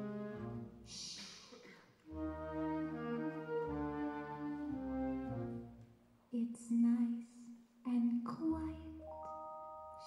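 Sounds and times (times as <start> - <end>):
wind band playing soft chords: 2.1 - 5.9.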